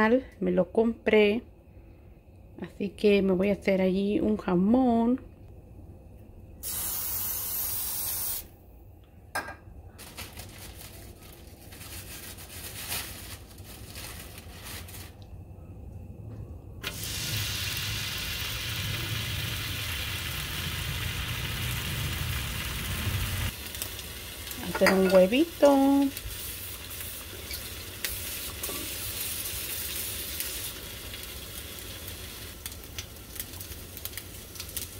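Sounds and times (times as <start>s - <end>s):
cooking oil spray hissing: 6.6s - 8.5s, 16.8s - 34.9s
ham sizzling on griddle: 16.8s - 34.9s.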